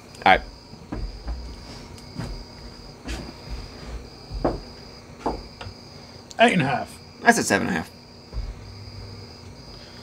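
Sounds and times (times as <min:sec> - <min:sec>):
insects chirring: 0:00.0 - 0:10.0
knocks and rustles: 0:00.7 - 0:05.8, 0:08.3 - 0:09.2.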